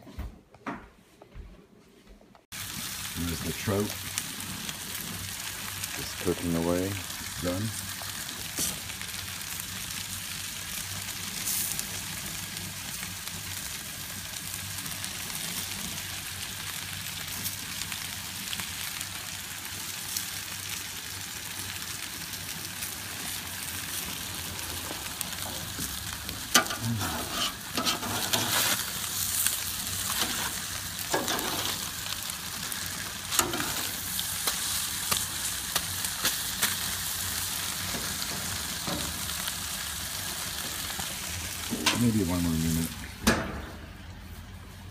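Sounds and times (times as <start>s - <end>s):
food sizzling on a grill: 2.5s - 44.9s
small crackles: 14.4s - 43.0s
sharp pops and crackles: 33.3s - 37.0s.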